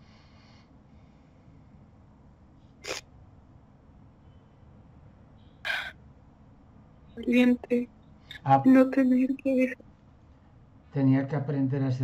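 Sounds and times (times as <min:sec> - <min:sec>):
person breathing: 0:00.0 - 0:01.8.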